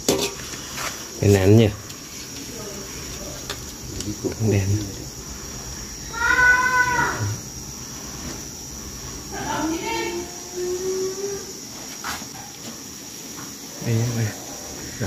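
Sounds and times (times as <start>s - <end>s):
high insect chirr: 0.0s - 15.0s
animal cries: 6.0s - 7.4s.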